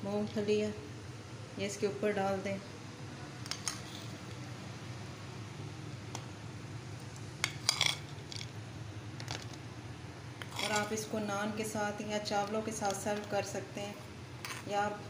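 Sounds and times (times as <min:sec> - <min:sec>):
steady low hum: 0:00.0 - 0:15.0
metal spoon clinking clay bowl: 0:10.4 - 0:10.9.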